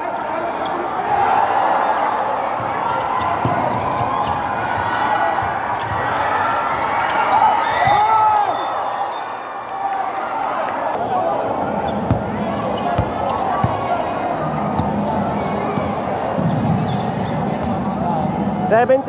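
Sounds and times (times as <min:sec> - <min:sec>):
crowd voices and shouts: 0:00.0 - 0:19.0
ball bouncing on wooden court: 0:02.6 - 0:06.1, 0:12.0 - 0:13.9.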